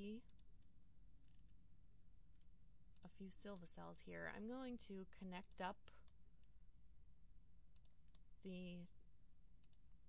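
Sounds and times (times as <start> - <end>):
computer mouse clicks: 0.1 - 0.6, 1.2 - 1.5, 7.7 - 8.3, 9.6 - 9.9.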